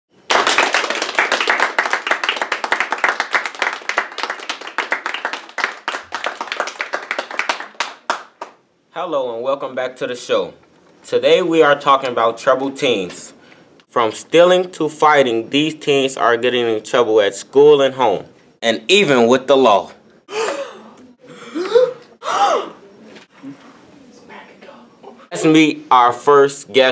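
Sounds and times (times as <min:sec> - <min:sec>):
people clapping in applause: 0:00.2 - 0:08.6
people gasping: 0:20.3 - 0:22.8.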